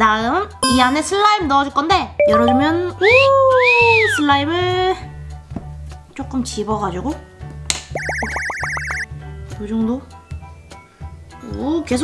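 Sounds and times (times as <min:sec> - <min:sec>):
warbling whistle: 0:08.0 - 0:09.1.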